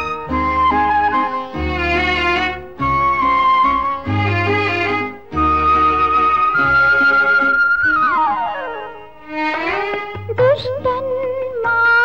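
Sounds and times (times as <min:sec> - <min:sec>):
flute melody: 0:00.0 - 0:11.9.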